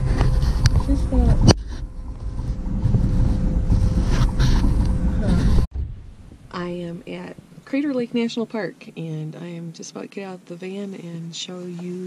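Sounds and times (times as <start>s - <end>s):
van engine and road noise: 0.0s - 7.2s.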